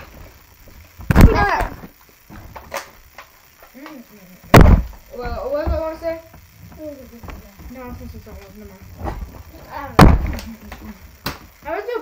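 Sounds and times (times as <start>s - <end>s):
plastic bottle thudding on table: 10.0s - 10.5s.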